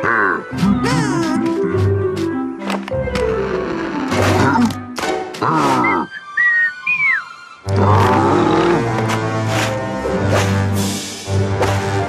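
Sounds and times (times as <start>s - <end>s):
cartoon music: 0.0s - 2.2s.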